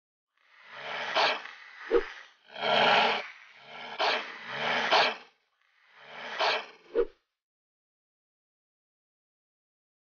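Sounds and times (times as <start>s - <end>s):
cartoon cobra hissing: 0.4s - 7.1s
cartoon dog growling: 0.5s - 7.0s.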